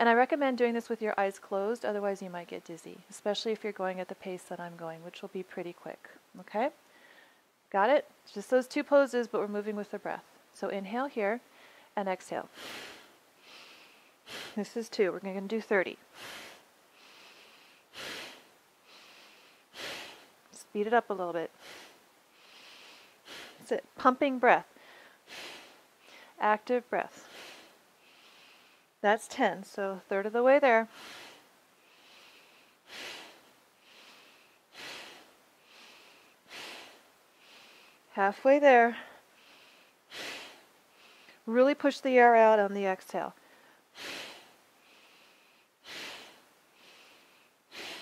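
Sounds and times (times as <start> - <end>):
woman breathing rhythmically: 6.8 - 7.6, 11.4 - 23.9, 24.7 - 29.0, 30.5 - 41.5, 43.3 - 48.0.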